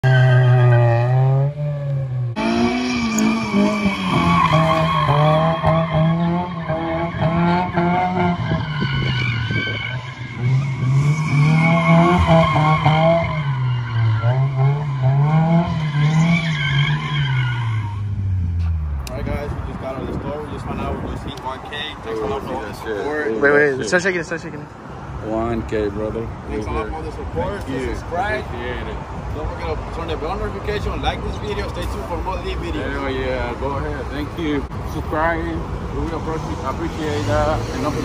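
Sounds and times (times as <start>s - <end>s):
car engine revving: 0.0s - 19.9s, 35.2s - 38.0s.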